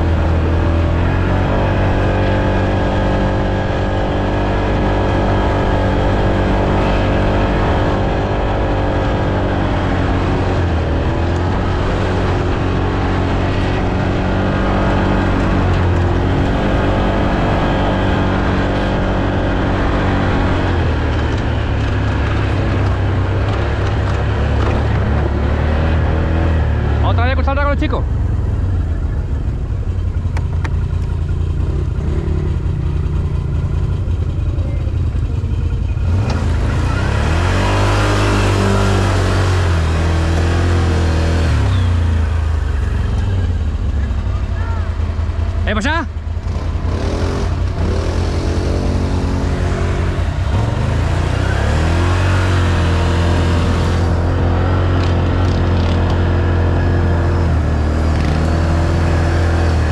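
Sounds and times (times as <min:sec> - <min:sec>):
atv engine running: 0:00.0 - 0:59.9
whistling glide: 0:41.6 - 0:42.1.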